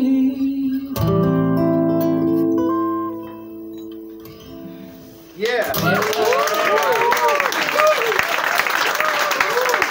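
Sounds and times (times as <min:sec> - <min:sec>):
soft plucked guitar notes: 0:00.0 - 0:05.0.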